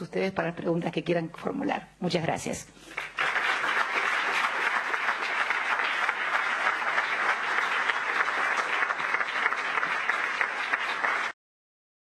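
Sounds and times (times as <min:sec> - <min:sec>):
audience applauding: 0:02.9 - 0:11.4.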